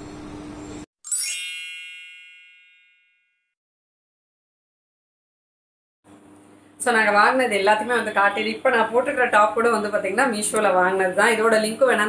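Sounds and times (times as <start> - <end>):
bell-like ding: 1.1 - 3.5.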